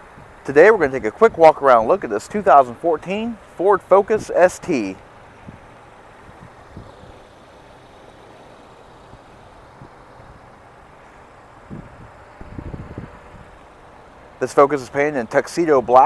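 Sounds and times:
outdoor background rumble: 0.0s - 16.0s.

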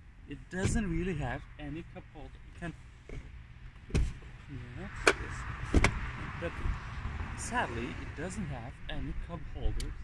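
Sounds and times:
car seat fittings knocking: 5.0s - 6.0s.

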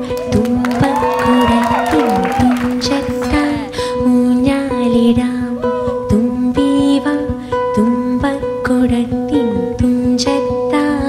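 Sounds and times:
plucked string music: 0.0s - 11.0s.

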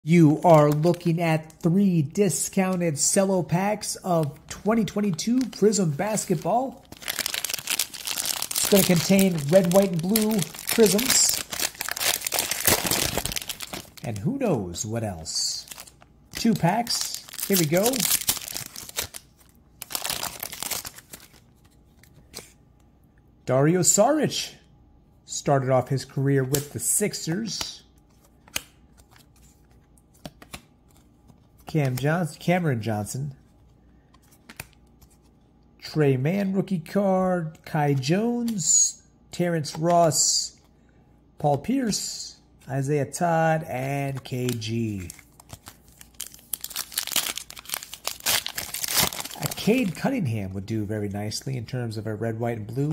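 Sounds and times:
plastic wrapper tearing and crinkling: 4.2s - 14.3s, 15.5s - 22.0s, 44.1s - 50.0s.

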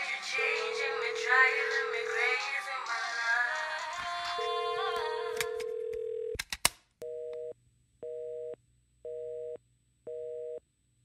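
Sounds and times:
telephone busy signal beeps: 0.4s - 2.4s.

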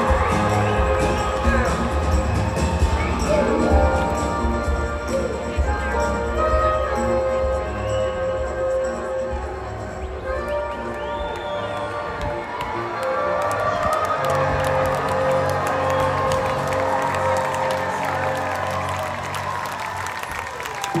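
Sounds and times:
crowd cheering and clapping: 0.0s - 9.0s, 9.8s - 21.0s
orchestra and band playing chords: 0.0s - 20.2s.

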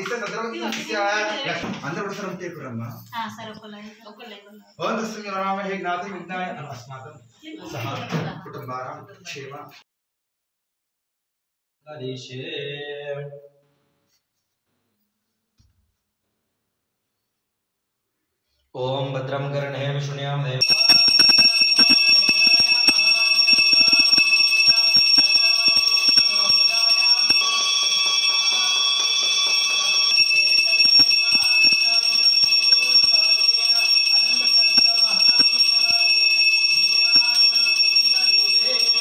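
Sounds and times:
higher bell ringing: 20.6s - 39.0s
temple bells ringing: 20.6s - 39.0s.

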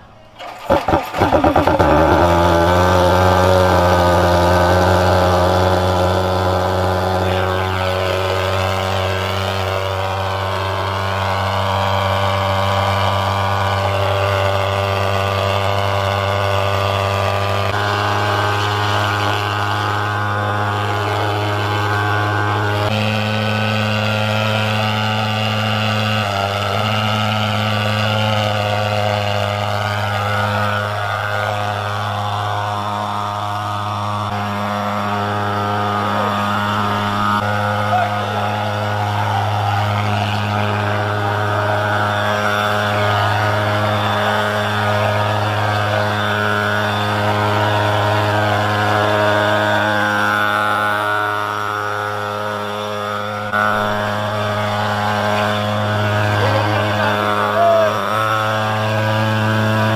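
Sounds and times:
fogging machine buzzing drone: 0.0s - 59.9s.

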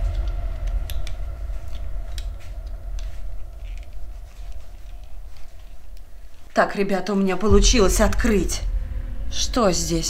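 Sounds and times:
low rumble of handling noise: 0.0s - 6.6s, 7.4s - 10.0s.

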